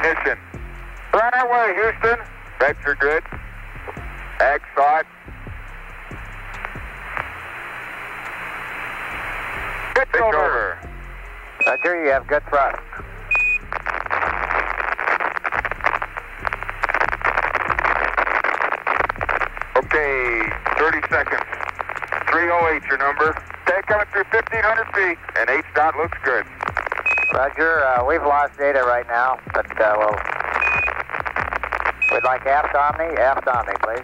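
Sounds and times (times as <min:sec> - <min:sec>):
crackling radio static: 0:00.0 - 0:34.0
steady low hum: 0:00.0 - 0:34.0.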